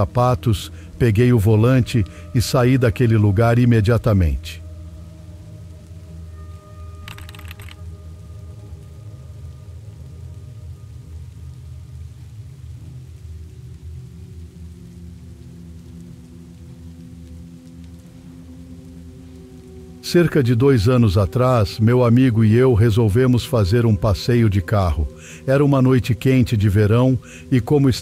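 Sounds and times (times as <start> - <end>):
dark ambient drone music: 0.0 - 28.0
rain: 0.0 - 28.0.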